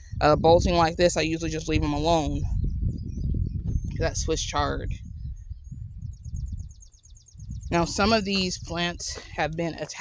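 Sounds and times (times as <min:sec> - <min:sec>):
low microphone rumble: 0:00.0 - 0:10.0.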